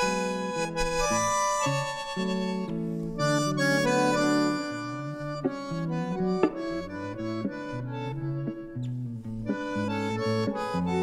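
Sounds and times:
bandoneon chords: 0.0 - 11.0
guitar plucking: 0.0 - 11.0.

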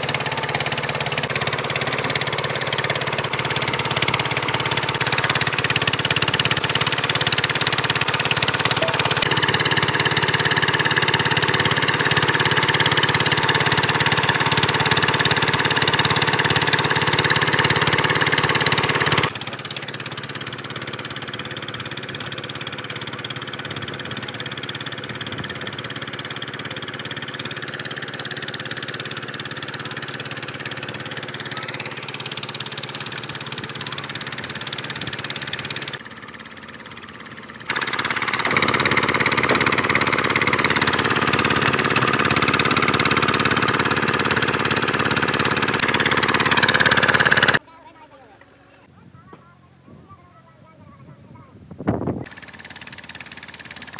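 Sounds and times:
engine driving concrete mixer: 0.0 - 47.6, 52.2 - 53.9.

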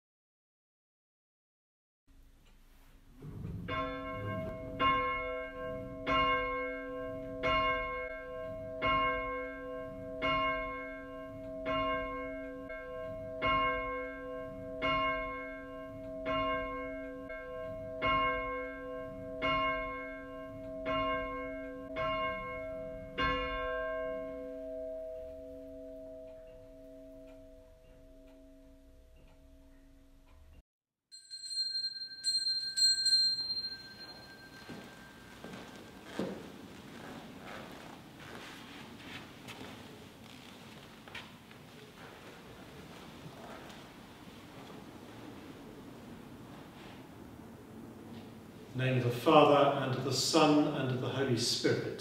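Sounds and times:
church bell tolling: 3.2 - 30.3, 31.2 - 36.7, 44.5 - 52.0.

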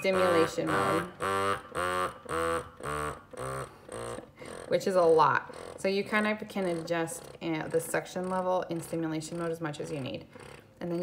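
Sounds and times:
breast pump motor pulsing: 0.0 - 11.0.

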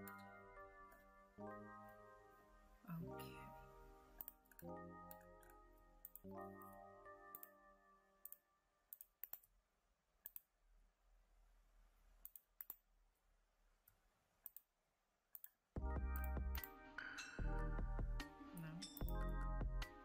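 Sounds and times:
soft background music notes: 0.0 - 9.2, 15.8 - 20.0
computer mouse clicks: 4.2 - 6.4, 7.3 - 7.6, 8.2 - 9.5, 10.2 - 10.5, 12.2 - 12.9, 13.8 - 14.7, 15.3 - 15.6.

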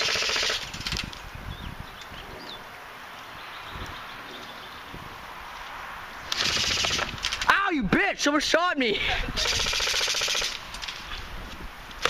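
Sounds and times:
airsoft gun rapid firing: 0.0 - 0.7, 6.3 - 7.3, 9.4 - 10.6.

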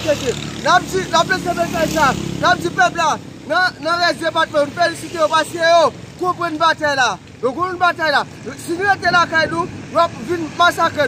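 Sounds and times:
man speaking loudly: 0.0 - 11.0.

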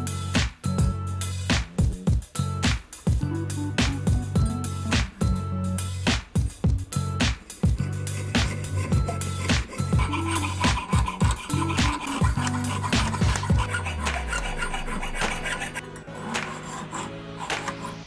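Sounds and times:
background music: 0.0 - 18.0
saw blade rasping through metal: 7.5 - 18.0.

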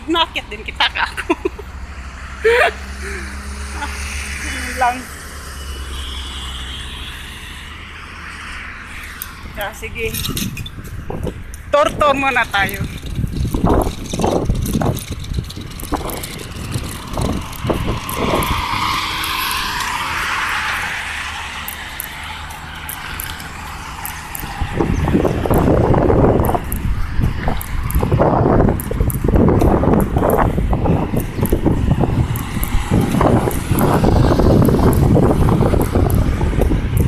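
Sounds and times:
road traffic passing: 0.0 - 37.0
wind buffeting microphone: 0.0 - 37.0.

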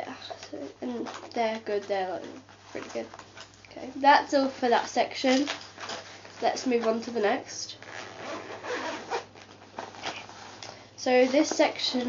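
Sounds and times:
fabric rubbing: 5.7 - 12.0
zip pulled open: 7.8 - 10.5.

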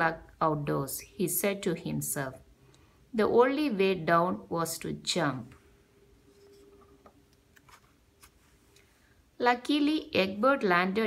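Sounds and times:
paper page turning: 7.5 - 8.6.

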